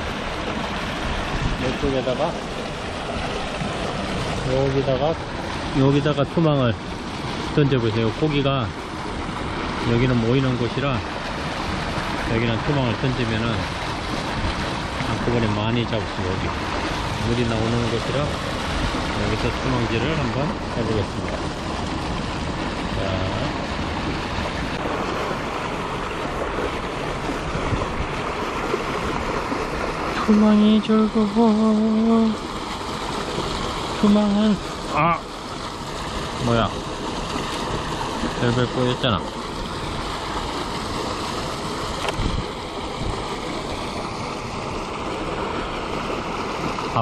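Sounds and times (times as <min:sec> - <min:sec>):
water gushing from pipe into pool: 0:00.0 - 0:47.0.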